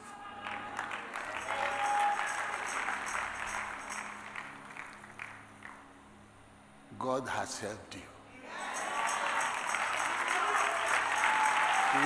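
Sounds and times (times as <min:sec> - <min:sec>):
congregation applauding: 0:00.0 - 0:05.8, 0:08.5 - 0:12.0
soft background music: 0:00.0 - 0:12.0.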